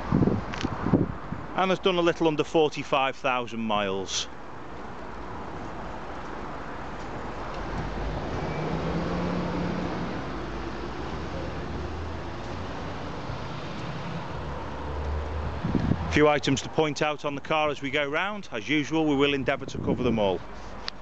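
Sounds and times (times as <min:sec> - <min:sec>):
wind on microphone: 0:00.0 - 0:01.6, 0:15.4 - 0:16.2, 0:19.6 - 0:20.4.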